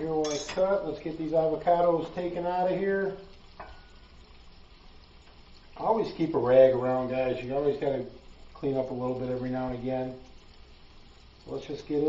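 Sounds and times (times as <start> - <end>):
steaks sizzling in a pan: 0.0 - 12.0.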